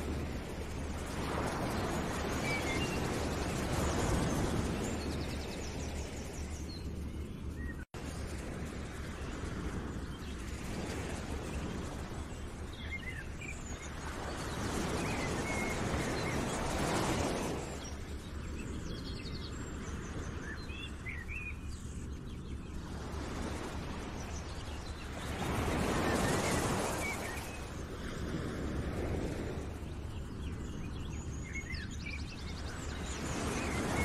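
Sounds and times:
steady rushing wind or surf: 0.0s - 34.0s.

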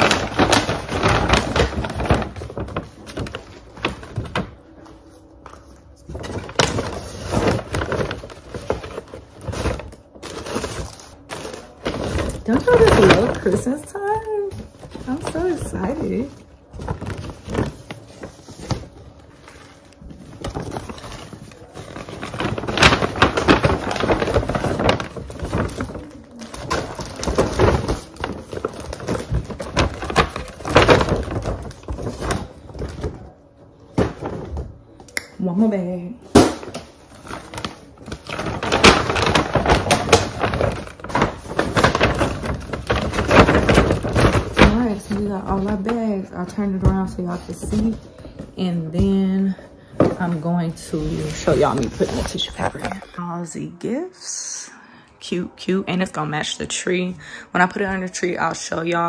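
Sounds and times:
paper bag and tissue rustling: 0.0s - 53.2s.

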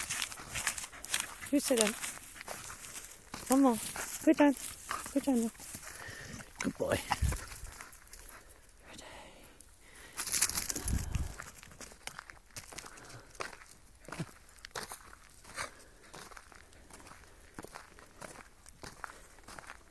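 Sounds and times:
footsteps crunching on gravel: 0.0s - 8.6s, 10.0s - 19.9s
scuffing on gravel: 0.0s - 8.6s, 10.0s - 19.9s.

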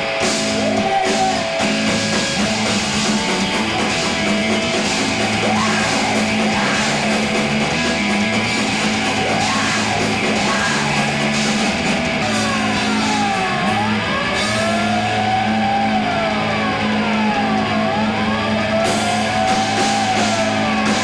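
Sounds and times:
rock band playing live: 0.0s - 21.0s
high siren-like wails: 8.6s - 21.0s.

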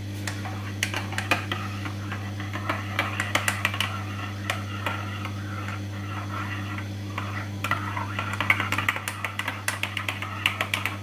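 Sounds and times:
low hum: 0.2s - 11.0s.

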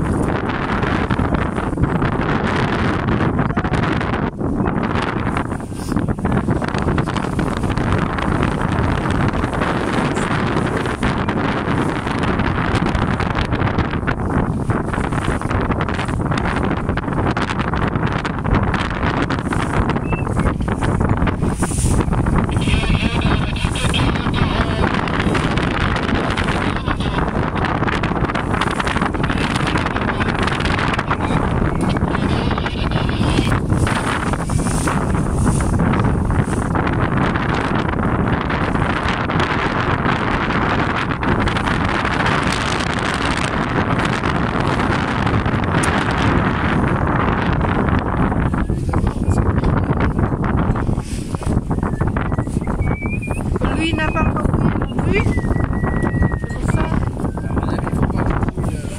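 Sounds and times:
motorboat engine running: 0.0s - 58.9s
water rushing past hull: 0.0s - 58.9s
wind buffeting microphone: 0.0s - 58.9s.

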